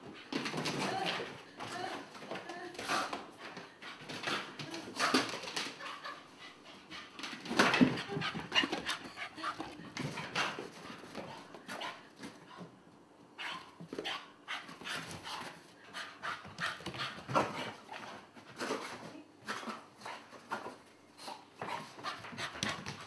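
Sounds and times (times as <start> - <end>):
dog panting: 2.8 - 12.7, 14.5 - 18.2.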